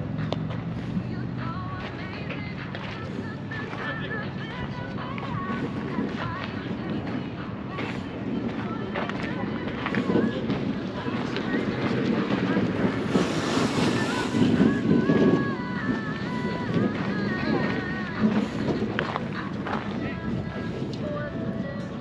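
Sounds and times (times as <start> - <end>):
wind buffeting microphone: 0.0 - 22.0
faint chatter of people: 0.8 - 22.0.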